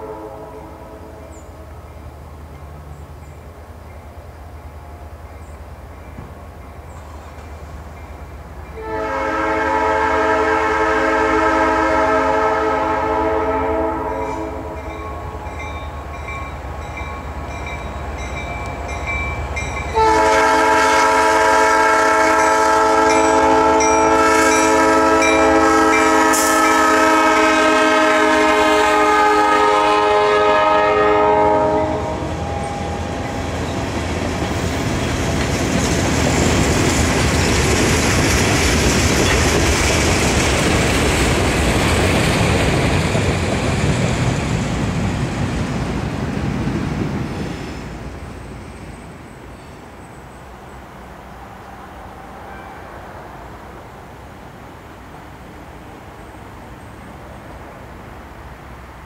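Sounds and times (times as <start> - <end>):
locomotive air horn blasts: 0.0 - 1.3, 8.8 - 15.6, 19.9 - 33.4
train cars rolling on rails: 0.0 - 59.0.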